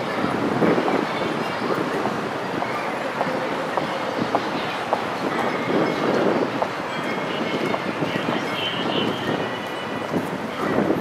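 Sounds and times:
street noise hum: 0:00.0 - 0:11.0.

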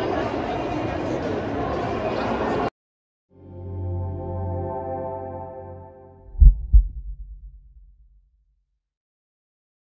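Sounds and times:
soft ambient music: 0:03.4 - 0:06.6
deep bass thumps: 0:06.3 - 0:08.2.

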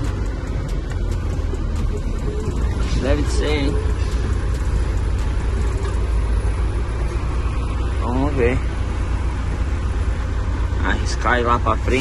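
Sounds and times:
truck engine low rumble: 0:00.0 - 0:12.0.

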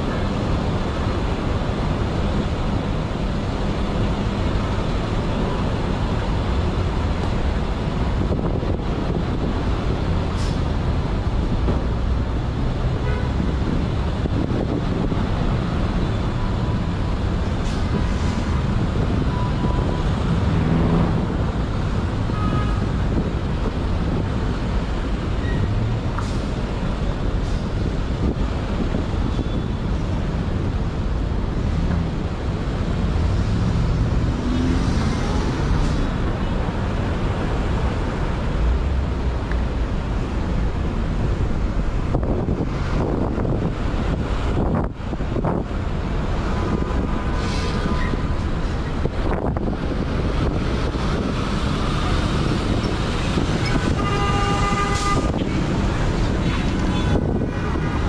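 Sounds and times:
traffic rumble: 0:00.0 - 0:58.0
car horn toot: 0:22.3 - 0:22.9, 0:53.8 - 0:55.4.

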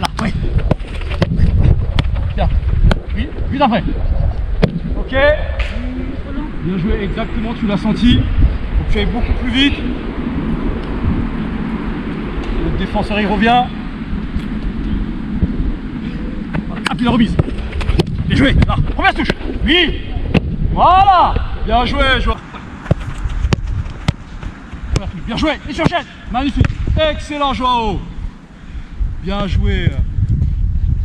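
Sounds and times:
wind rumbling on microphone: 0:00.0 - 0:31.0
football being kicked: 0:22.8 - 0:25.2.

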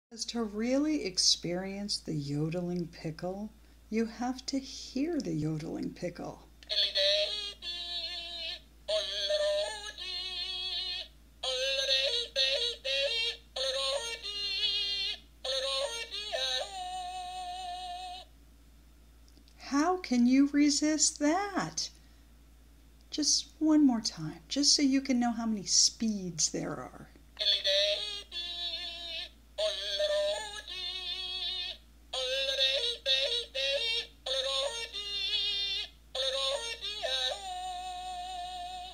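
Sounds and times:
toy playing recorded yodel: 0:06.6 - 0:18.3, 0:27.4 - 0:38.9.

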